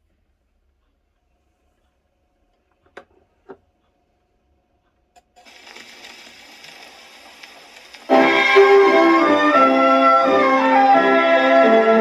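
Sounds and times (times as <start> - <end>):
record surface hiss and crackle: 0.0 - 12.0
phonograph needle click: 5.2 - 8.2.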